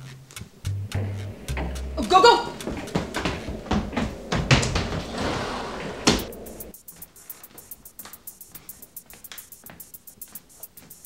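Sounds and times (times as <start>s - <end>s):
background music beat: 0.0s - 4.6s, 6.1s - 11.0s
hurried scuffling: 0.5s - 11.0s
sliding closet door banging shut: 1.0s - 6.7s
quick light ticking: 6.2s - 11.0s.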